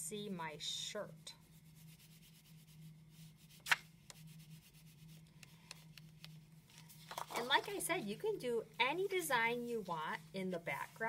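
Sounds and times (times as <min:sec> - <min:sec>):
crayon rubbing on paper: 0:01.3 - 0:05.2.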